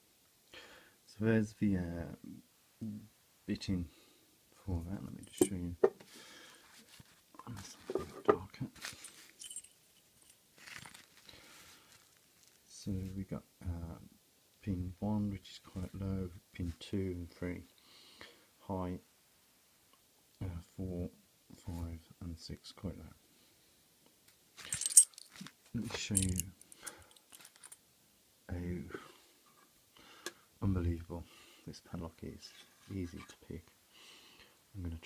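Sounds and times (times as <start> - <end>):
handling knocks and rustles: 5.1 - 6.1, 6.7 - 12.7, 24.6 - 27.8
keys jingling: 5.2 - 5.6, 9.0 - 11.1, 24.6 - 27.8.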